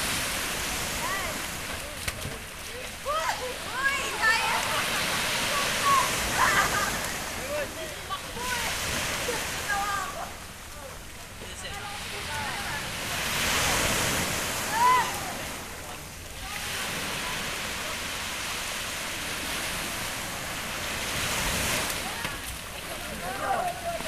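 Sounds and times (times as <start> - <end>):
small waves breaking: 0.0 - 24.0
people shouting: 5.5 - 7.1, 14.6 - 15.5.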